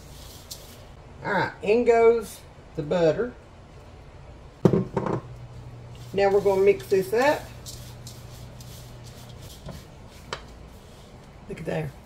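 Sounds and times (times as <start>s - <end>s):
low steady hum: 0.0s - 12.0s
cup knocking against bowl: 4.6s - 5.3s.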